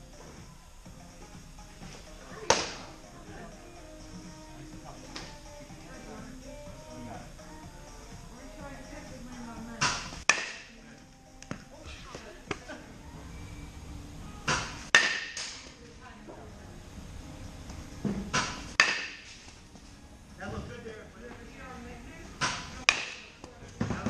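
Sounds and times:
bat cracking balls: 0:02.4 - 0:02.9, 0:09.8 - 0:10.8, 0:14.5 - 0:15.7, 0:18.3 - 0:19.3, 0:22.4 - 0:23.5.

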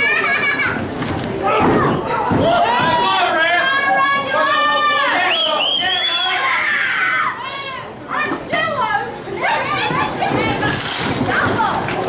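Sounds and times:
children shouting and yelling: 0:01.4 - 0:05.6, 0:06.2 - 0:10.7.

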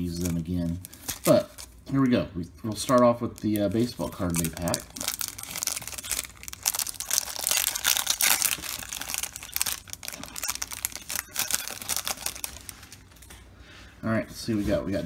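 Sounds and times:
plastic wrapper crinkling and tearing: 0:00.0 - 0:01.8, 0:02.7 - 0:13.4.

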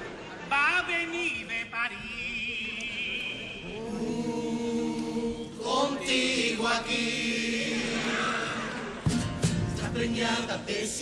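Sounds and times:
male chorus singing: 0:03.0 - 0:09.0, 0:09.6 - 0:11.0.

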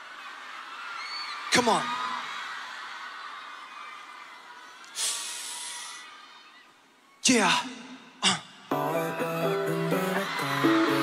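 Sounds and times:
arena crowd cheering and screaming: 0:00.0 - 0:08.1, 0:08.7 - 0:11.0.

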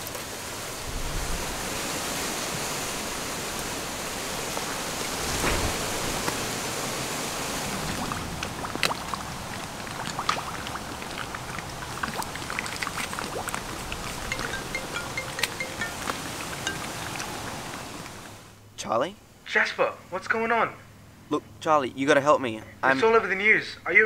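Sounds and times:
outdoor background hiss: 0:00.0 - 0:24.0.

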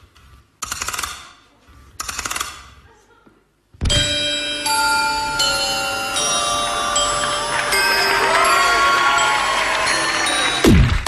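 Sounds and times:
dance music with bell chimes: 0:03.9 - 0:10.8.

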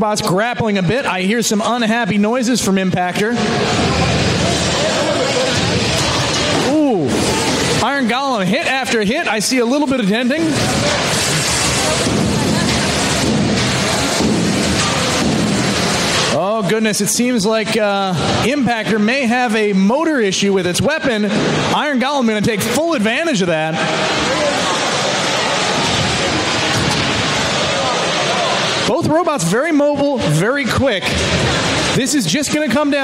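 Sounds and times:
crowd chatter: 0:00.0 - 0:33.0
voices in background: 0:01.2 - 0:33.0.

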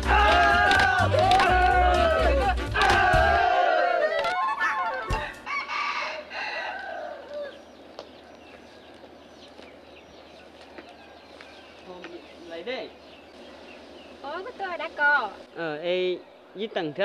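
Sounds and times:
music: 0:00.0 - 0:03.6
loud shouting: 0:00.0 - 0:05.4
rooster crowing: 0:00.0 - 0:07.6
small birds chirping: 0:04.0 - 0:17.0.

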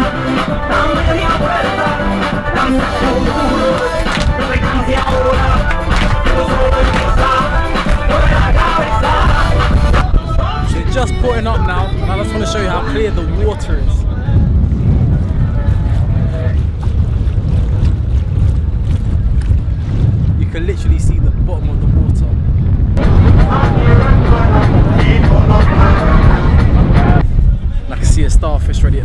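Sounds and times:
wind buffeting microphone: 0:03.2 - 0:29.0
people talking: 0:10.6 - 0:14.5, 0:20.4 - 0:22.4, 0:23.0 - 0:27.2, 0:27.9 - 0:29.0.

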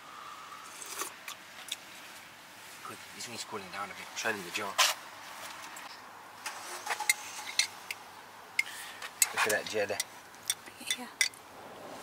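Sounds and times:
car park background noise: 0:00.0 - 0:12.0.

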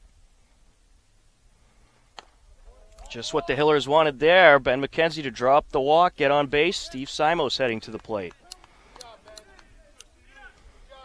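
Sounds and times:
distant voices calling out: 0:02.6 - 0:11.0.

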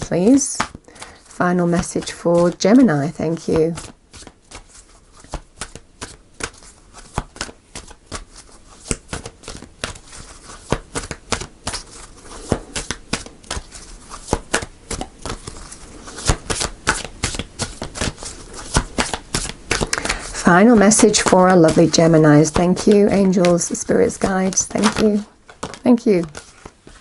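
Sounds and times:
cards being shuffled: 0:00.0 - 0:27.0.

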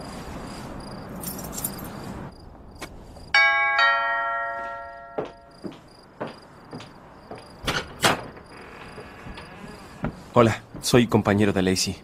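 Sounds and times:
crickets chirping: 0:00.0 - 0:12.0
two-tone doorbell chime: 0:03.4 - 0:05.7.

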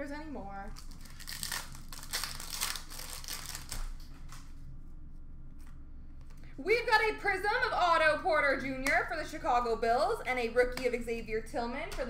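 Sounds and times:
wrapper crinkling and rustling: 0:00.7 - 0:04.5.

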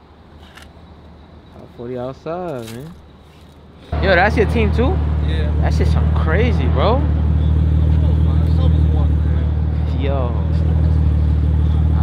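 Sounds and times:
car engines idling: 0:03.1 - 0:12.0.

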